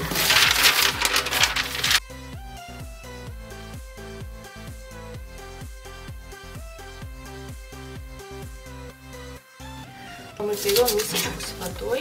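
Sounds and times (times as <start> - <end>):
paper rustling and crinkling: 0.0 - 2.0, 10.4 - 11.8
electronic music with steady beat: 0.0 - 10.3.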